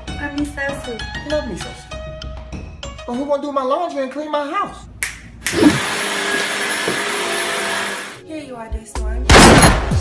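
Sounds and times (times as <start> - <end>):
vacuum cleaner running: 5.5 - 8.2.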